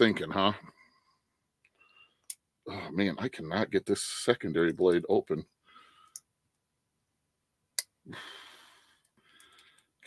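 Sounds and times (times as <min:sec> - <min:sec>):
long breath out: 0:08.1 - 0:09.9.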